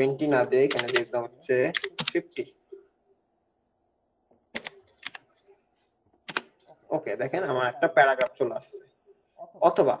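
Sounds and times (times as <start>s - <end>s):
computer keyboard clicks: 0.7s - 1.0s, 4.6s - 5.3s, 6.2s - 6.5s.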